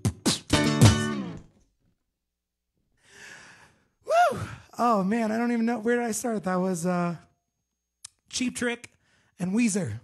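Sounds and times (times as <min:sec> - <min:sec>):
faint breath: 0:03.0 - 0:04.6.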